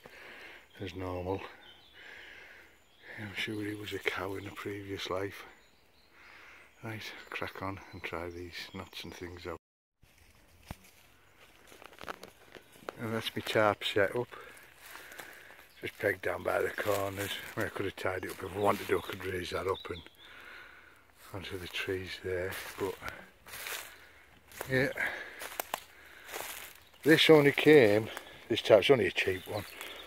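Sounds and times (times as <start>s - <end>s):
footsteps on dry leaves: 10.0s - 13.6s, 14.2s - 19.5s, 21.2s - 30.0s
twigs snapping: 10.6s - 13.0s, 25.3s - 26.9s.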